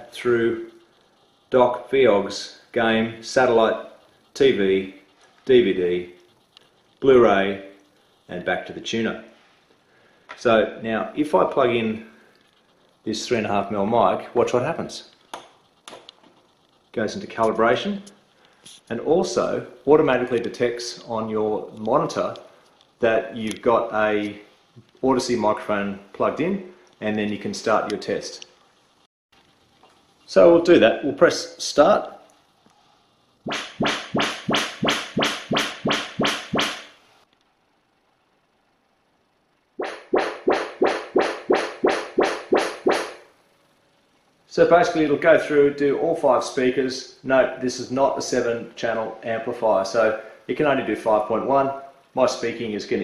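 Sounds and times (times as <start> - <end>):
sharp test pulses from loudspeakers: 33.4 - 36.9, 39.8 - 43.3.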